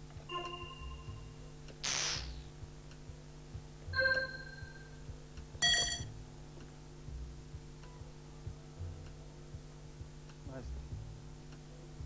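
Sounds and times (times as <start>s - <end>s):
electronic chime: 0.3s - 1.4s, 4.0s - 5.0s, 5.6s - 6.1s
bright electronic beep: 0.3s - 2.2s, 4.0s - 4.9s, 5.6s - 6.1s.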